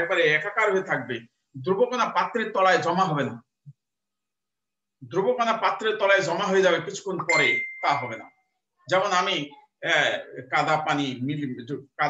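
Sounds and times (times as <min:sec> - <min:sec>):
man lecturing: 0:00.0 - 0:03.6, 0:05.0 - 0:12.0
high electronic beep: 0:07.3 - 0:08.4.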